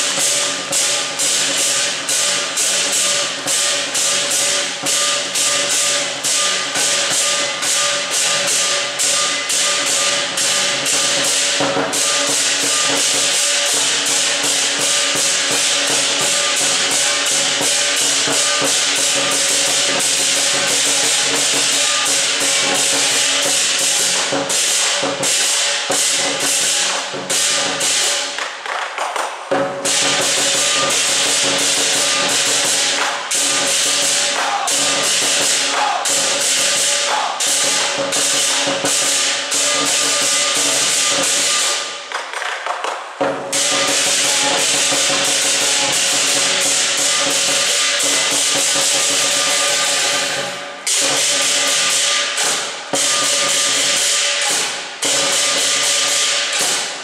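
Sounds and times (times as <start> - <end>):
large drum beating: 0.0 - 28.3, 29.5 - 41.8, 43.2 - 56.8
hand cymbals clashing: 0.0 - 28.5, 29.5 - 42.1, 43.3 - 57.0.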